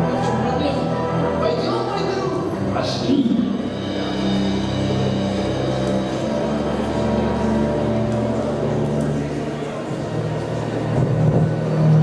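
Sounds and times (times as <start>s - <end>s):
low rumbling drone: 2.4s - 12.0s.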